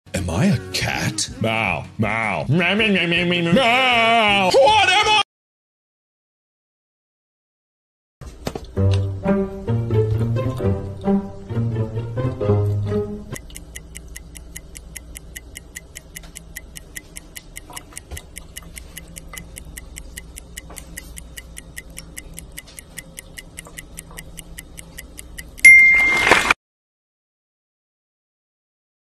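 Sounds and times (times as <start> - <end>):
high-pitched ticking: 13.3 - 25.7.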